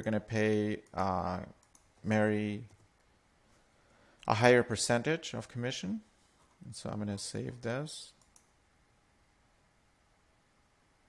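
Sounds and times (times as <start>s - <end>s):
computer mouse click: 0.8s - 1.9s, 8.2s - 8.6s.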